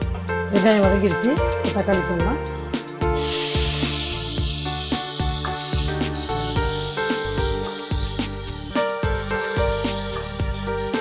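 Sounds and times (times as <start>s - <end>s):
background music with steady beat: 0.0s - 11.0s
food sizzling in a hot pan: 3.1s - 11.0s.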